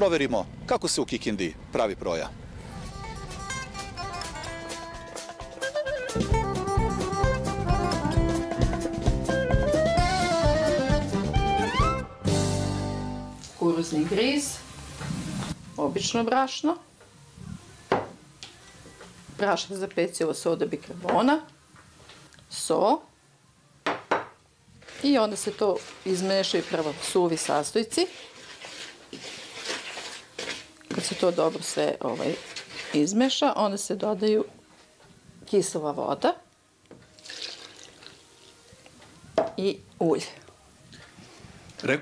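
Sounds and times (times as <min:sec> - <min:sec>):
sharp knock on mixing bowl: 0:23.9 - 0:24.4
flour poured into plastic bowl: 0:24.8 - 0:33.1, 0:37.2 - 0:38.2
water pouring into bowl: 0:37.2 - 0:38.3.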